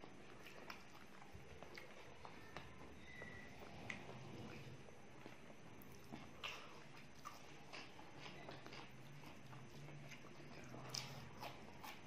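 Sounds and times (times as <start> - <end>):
low steady hum: 0.0 - 12.0
wet chewing and lip smacks: 0.0 - 12.0.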